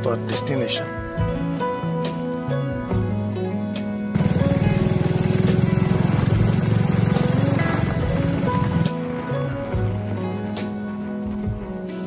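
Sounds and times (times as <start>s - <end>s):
background music: 0.0s - 12.0s
motorcycle engine running: 4.2s - 9.0s.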